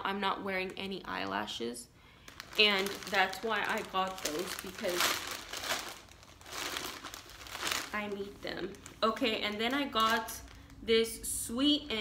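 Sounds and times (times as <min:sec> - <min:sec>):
plastic bag crinkling: 0:02.2 - 0:10.9.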